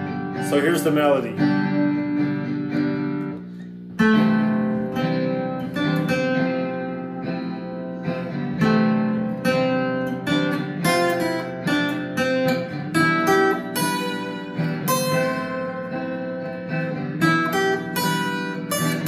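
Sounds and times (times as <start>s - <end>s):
acoustic guitar melody: 0.0s - 19.0s
strummed guitar chords: 0.0s - 19.0s.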